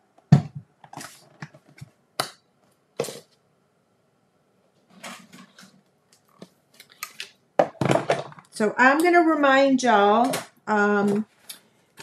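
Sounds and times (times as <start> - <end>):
plastic handling noises: 0.2 - 3.4, 4.8 - 8.6.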